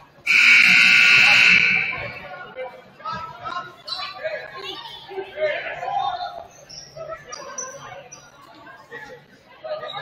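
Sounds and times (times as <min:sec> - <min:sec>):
scoreboard buzzer: 0:00.3 - 0:02.1.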